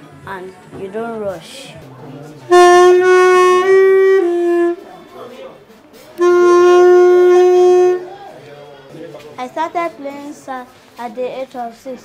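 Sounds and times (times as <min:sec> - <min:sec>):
saxophone playing held notes: 0:02.5 - 0:05.0, 0:06.2 - 0:08.3.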